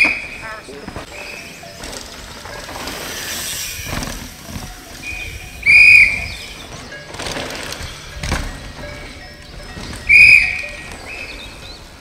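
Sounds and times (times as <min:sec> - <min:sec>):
mountain bikes passing on dirt: 0:00.0 - 0:12.0
whistle blast: 0:05.0 - 0:06.6, 0:10.1 - 0:10.7
fainter short whistle tones: 0:05.1 - 0:06.6.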